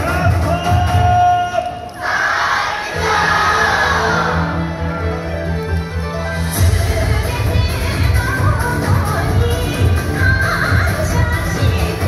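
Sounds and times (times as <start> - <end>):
group shouting a chant: 2.0 - 4.5
dance music with heavy beat: 6.6 - 12.0.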